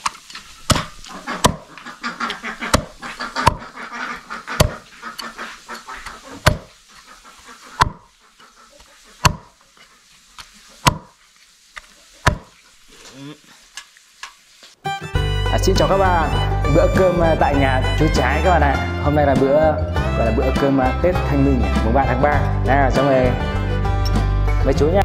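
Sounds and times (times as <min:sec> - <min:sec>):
cleaver chopping on a board: 0:00.7 - 0:01.7, 0:02.7 - 0:03.7, 0:04.6 - 0:04.8, 0:06.4 - 0:06.7, 0:07.8 - 0:08.0, 0:09.2 - 0:09.5, 0:10.8 - 0:11.2, 0:12.2 - 0:12.5.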